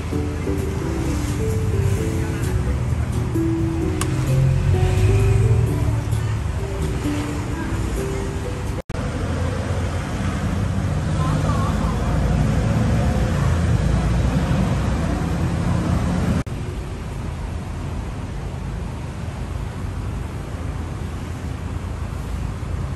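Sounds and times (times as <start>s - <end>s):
steady street hum: 0.0s - 22.9s
vehicle engine rumbling: 0.0s - 22.9s.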